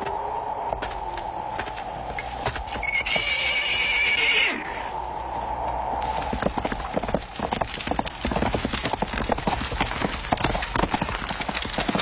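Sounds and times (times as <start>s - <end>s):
hooves clip-clopping: 0.0s - 12.0s
horse whinnying: 2.7s - 4.9s.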